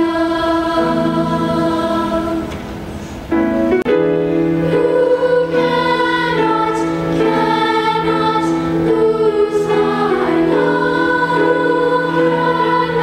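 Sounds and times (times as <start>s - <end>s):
choir singing held chords: 0.0s - 13.0s.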